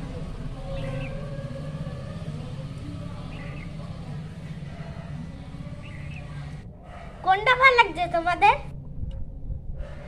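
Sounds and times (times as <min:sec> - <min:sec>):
low rumble: 0:08.2 - 0:10.0.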